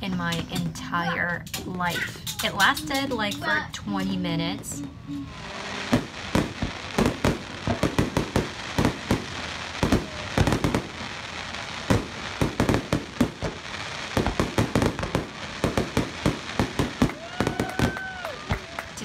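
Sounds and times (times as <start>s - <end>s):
fireworks crackling: 0.1s - 19.0s
fireworks bangs: 0.2s - 19.0s.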